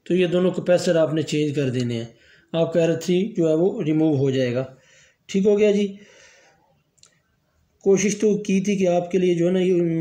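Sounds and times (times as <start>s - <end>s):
man speaking: 0.0s - 6.0s, 7.8s - 10.0s.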